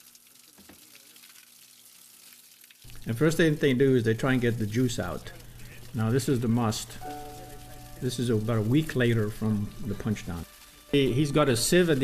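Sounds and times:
wine trickling into plastic bin: 2.8s - 12.0s.

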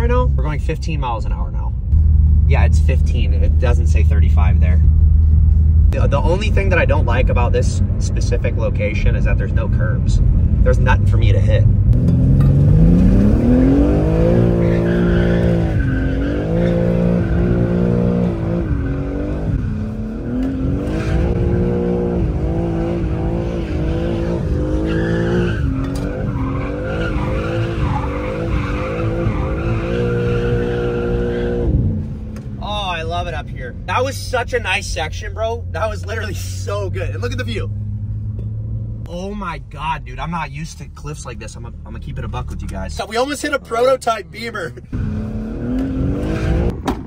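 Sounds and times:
car engine revving: 1.9s - 39.6s, 40.8s - 47.0s.

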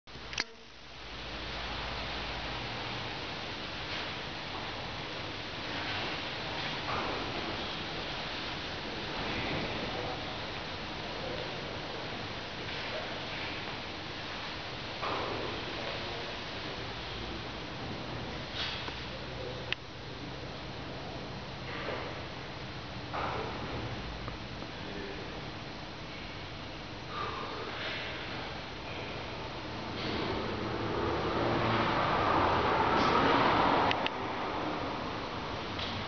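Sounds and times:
steady background hiss: 0.1s - 36.0s
sharp click: 0.3s - 0.6s.

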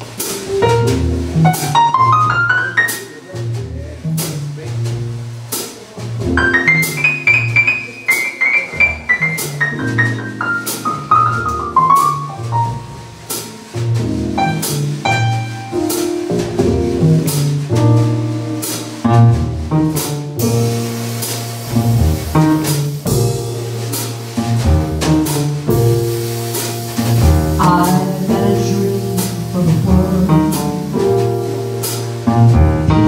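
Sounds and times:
piano: 0.0s - 33.0s
walking double bass: 0.0s - 33.0s.

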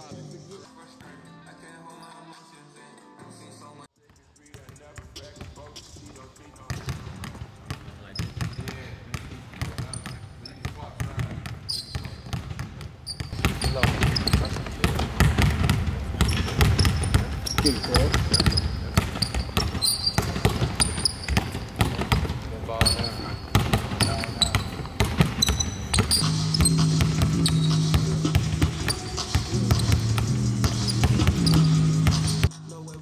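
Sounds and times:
background music: 0.0s - 8.3s, 23.4s - 33.0s
basketball bouncing on hardwood floor: 6.6s - 32.5s
sneaker squeaks: 6.6s - 32.5s.

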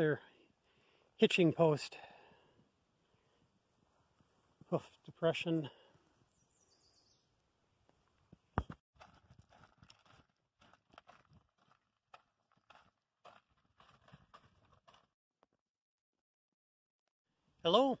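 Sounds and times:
footsteps on gravel: 9.0s - 15.1s.

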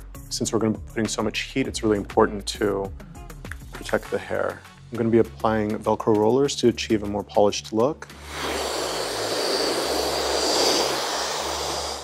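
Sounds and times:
hair dryer running: 8.2s - 12.0s.

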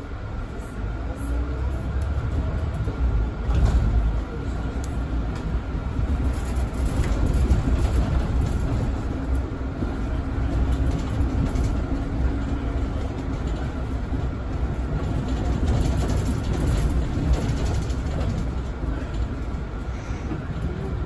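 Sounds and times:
bus engine and road rumble: 0.0s - 21.0s.

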